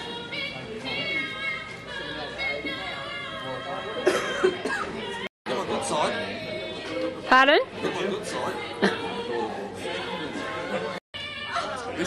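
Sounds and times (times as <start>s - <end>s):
person coughing loudly: 4.0s - 4.9s.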